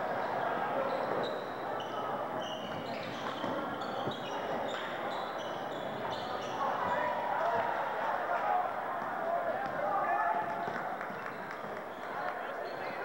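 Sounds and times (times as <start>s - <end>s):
crowd chatter: 0.0s - 13.0s
sneakers squeaking: 0.3s - 7.2s.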